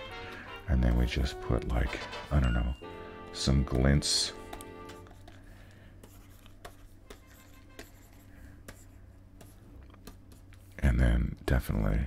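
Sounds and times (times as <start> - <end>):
low steady hum: 0.0 - 12.0
stylus taps: 3.7 - 5.4
stylus scratching on tablet: 6.0 - 10.8.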